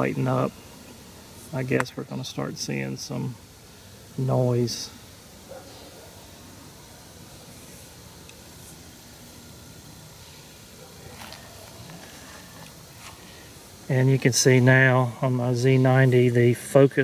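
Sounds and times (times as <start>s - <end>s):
man speaking: 0.0s - 0.6s, 1.5s - 3.4s, 4.2s - 5.0s, 13.9s - 17.0s
outdoor background hiss: 0.0s - 17.0s.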